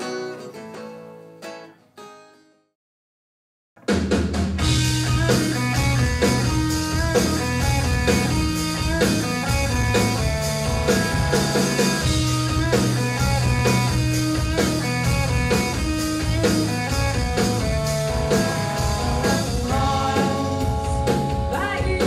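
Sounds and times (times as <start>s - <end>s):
drum beat: 3.8s - 22.0s
bass guitar: 4.2s - 22.0s
electric guitar solo: 4.9s - 19.6s.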